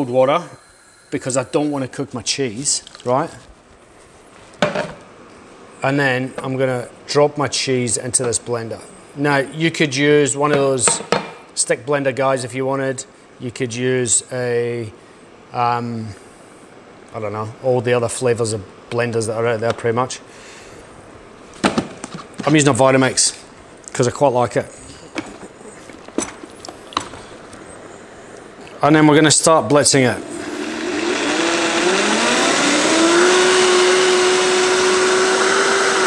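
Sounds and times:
blender jar set down on wood: 4.6s - 5.0s.

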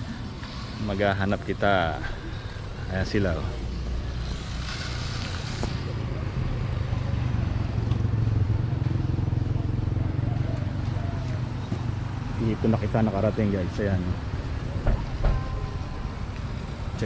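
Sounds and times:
vehicle engine humming: 0.0s - 17.0s.

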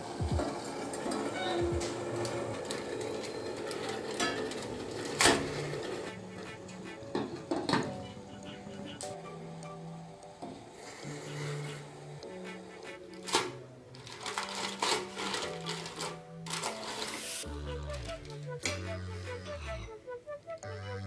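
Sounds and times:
aluminium foil crinkling: 13.2s - 17.5s
background music with bass line: 15.6s - 21.0s.

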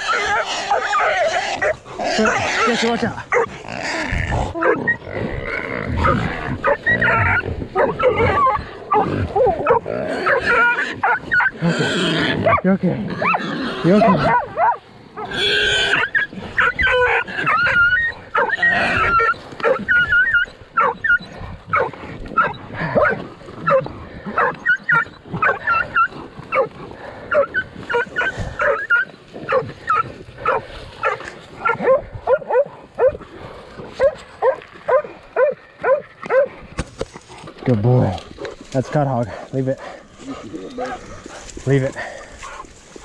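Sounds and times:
dogs barking and yelping: 0.0s - 43.0s.

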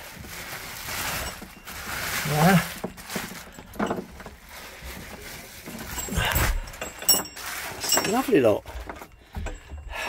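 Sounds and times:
wet plastic bags rustling: 0.0s - 10.0s.

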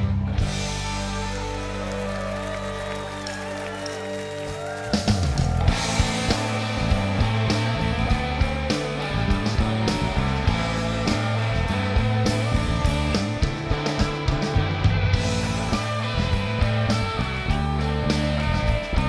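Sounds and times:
bass guitar: 0.0s - 19.0s
drums: 0.0s - 19.0s
electric guitars: 0.0s - 19.0s.

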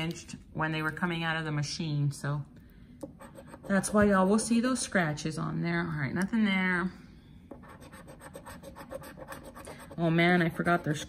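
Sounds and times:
scratching lottery ticket: 7.6s - 11.0s.

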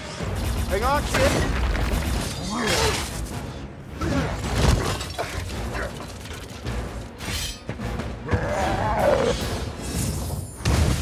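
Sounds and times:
background film score: 0.0s - 11.0s.

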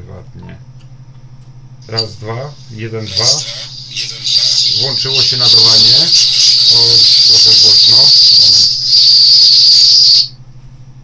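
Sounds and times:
loudspeaker high-pitched whine: 1.8s - 10.4s.

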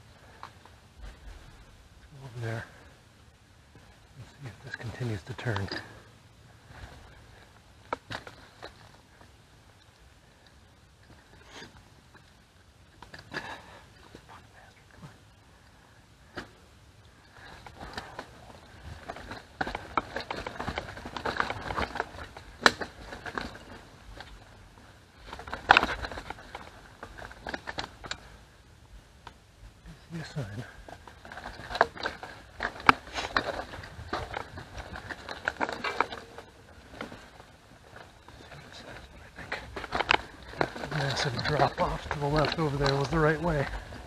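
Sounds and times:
bike tyres on rock and leaves: 0.0s - 3.0s, 3.7s - 6.0s, 6.6s - 12.4s, 16.2s - 44.0s.

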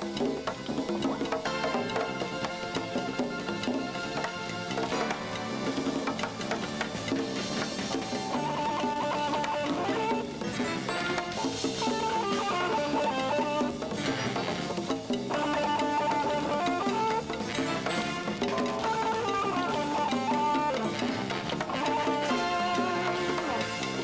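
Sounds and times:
congas: 0.0s - 24.0s
drum kit: 0.0s - 24.0s
electric guitar long held notes: 1.5s - 24.0s.

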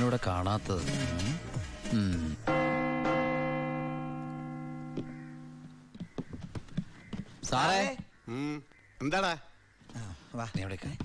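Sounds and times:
large metal bell ringing: 2.5s - 5.8s.

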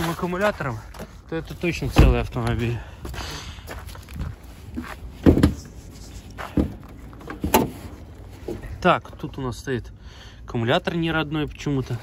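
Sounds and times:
footsteps on gravel: 0.0s - 8.8s.

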